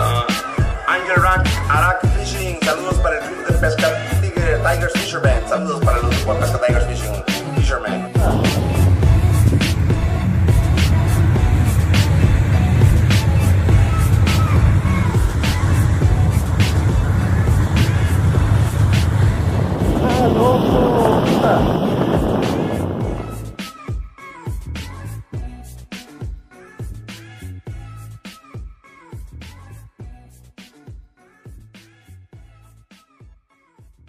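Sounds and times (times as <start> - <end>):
music with regular beat: 0.0 - 34.0
vehicle driving on dirt track: 8.2 - 23.5.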